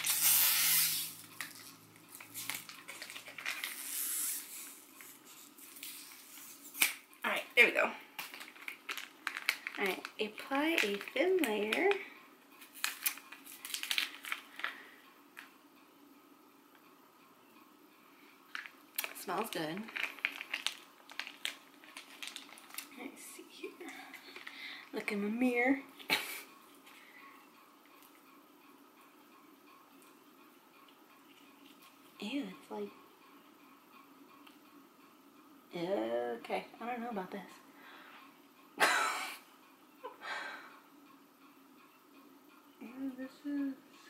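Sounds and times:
plastic sachet crinkling: 0.0s - 7.0s, 8.2s - 14.8s, 18.5s - 25.0s.

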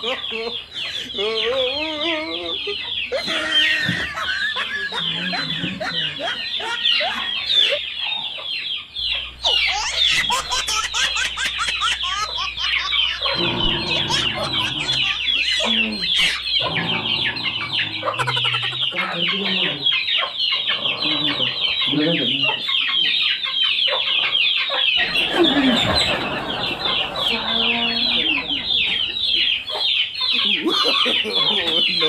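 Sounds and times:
chickens clucking and cheeping: 0.0s - 32.0s.

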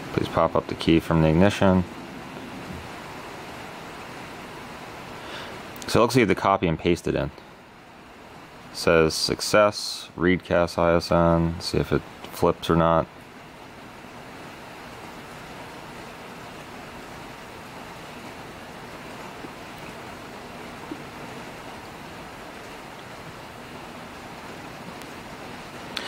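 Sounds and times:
steady rushing noise: 0.0s - 5.7s.

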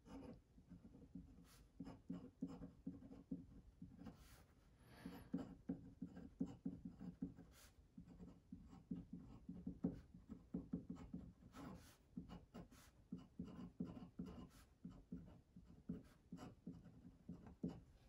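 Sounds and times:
pen nib scratching on paper: 0.0s - 18.0s.

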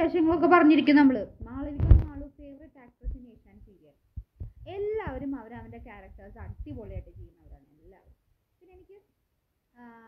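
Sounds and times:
woman talking: 0.0s - 4.0s, 4.6s - 9.1s.

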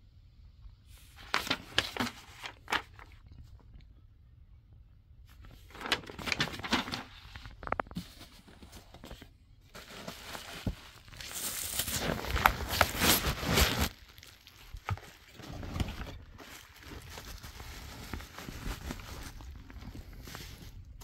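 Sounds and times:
bubble wrap crinkling: 1.2s - 3.2s, 5.5s - 21.0s.

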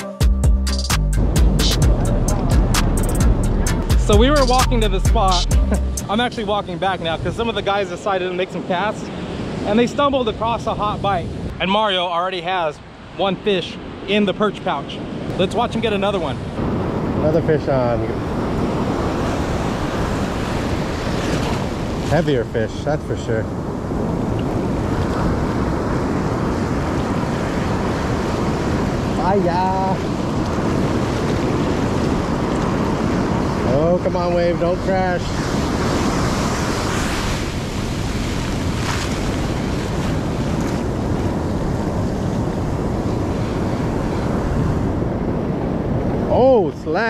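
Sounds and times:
wind buffeting microphone: 1.2s - 11.6s, 15.0s - 47.0s
ocean surf washing up beach: 4.1s - 47.0s.

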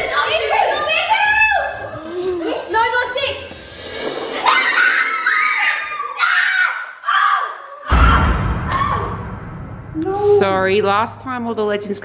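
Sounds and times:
children screaming and squealing: 4.3s - 8.1s
loud low rumbling: 7.9s - 12.0s.

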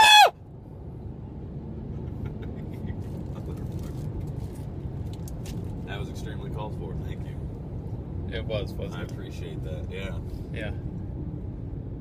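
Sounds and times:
short scream with falling pitch: 0.0s - 0.3s
truck cabin engine and road rumble: 0.0s - 12.0s.

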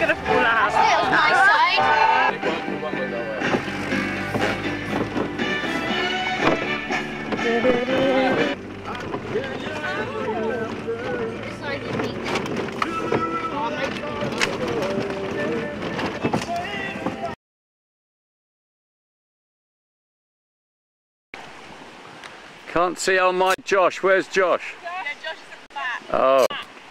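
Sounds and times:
music with singing voice: 2.0s - 11.5s, 12.8s - 17.4s.

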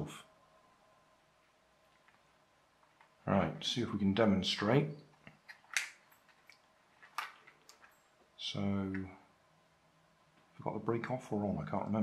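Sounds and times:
plastic and wires clicking and rustling: 5.2s - 8.1s.

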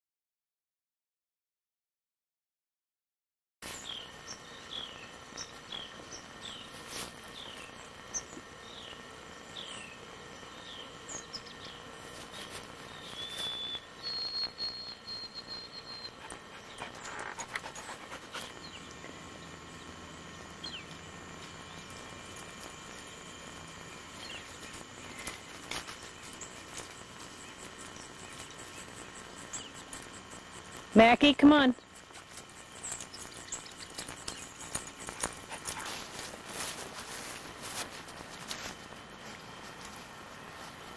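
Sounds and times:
bird chirping: 3.8s - 6.7s, 7.3s - 21.0s, 23.8s - 35.1s
bird whistled note: 13.2s - 16.2s.

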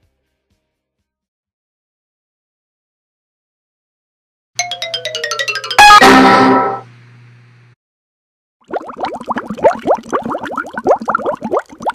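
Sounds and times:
rising bubble blips: 8.6s - 11.9s.

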